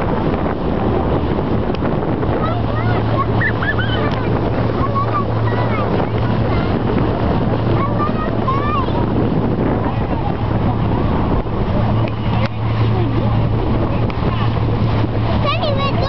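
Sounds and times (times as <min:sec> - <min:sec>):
motorboat engine droning: 0:00.0 - 0:16.0
water along hull: 0:00.0 - 0:16.0
wind across microphone: 0:00.0 - 0:16.0.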